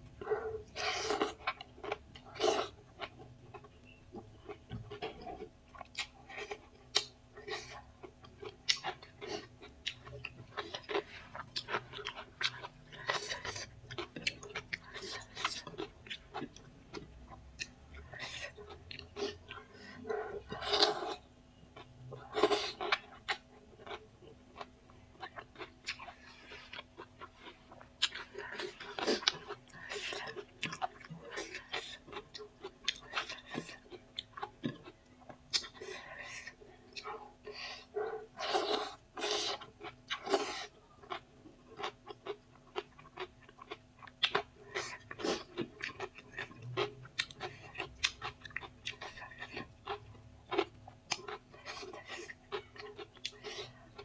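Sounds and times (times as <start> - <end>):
person chewing food: 0.0 - 54.0.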